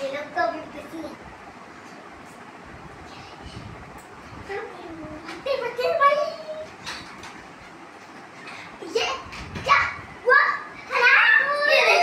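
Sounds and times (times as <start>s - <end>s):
children calling out: 9.7s - 12.0s
child crying out: 10.9s - 12.0s.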